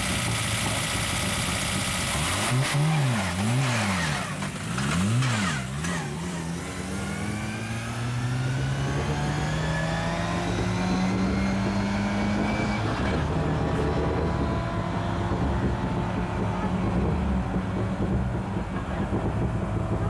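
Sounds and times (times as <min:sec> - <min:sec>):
car engine revving: 0:00.0 - 0:20.0.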